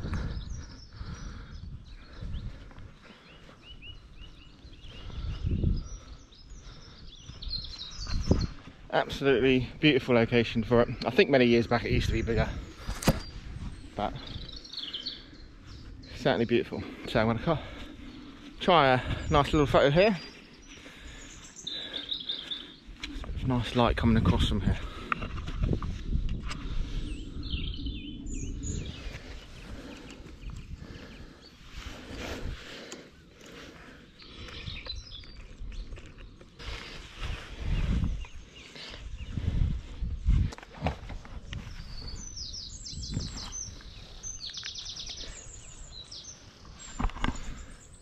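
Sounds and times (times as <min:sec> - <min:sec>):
birds singing: 0:00.0 - 0:48.0.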